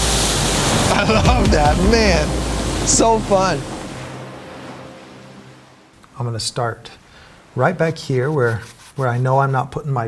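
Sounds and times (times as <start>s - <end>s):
ocean waves breaking on rocks: 0.0s - 6.0s.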